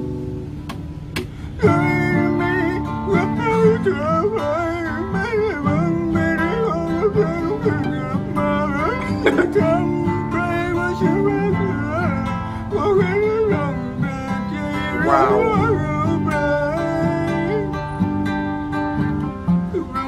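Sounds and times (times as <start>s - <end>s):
acoustic guitar: 0.0s - 20.0s
man singing gravelly: 1.6s - 17.8s.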